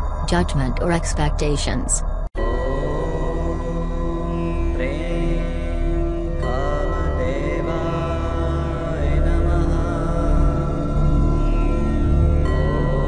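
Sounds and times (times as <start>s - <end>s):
chanted sliding-pitch vocal: 0.0s - 11.9s
steady sustained drone: 0.0s - 13.0s.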